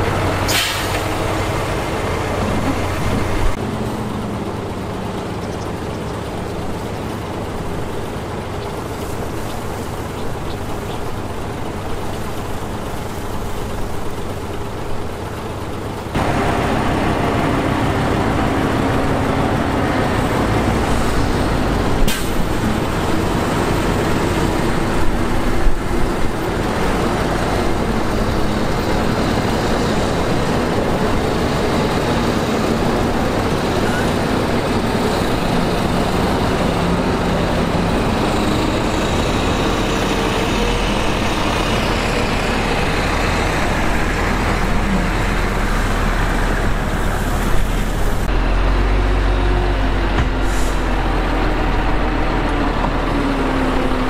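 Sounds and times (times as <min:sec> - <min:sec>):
diesel machinery rumbling: 0:00.0 - 0:54.0.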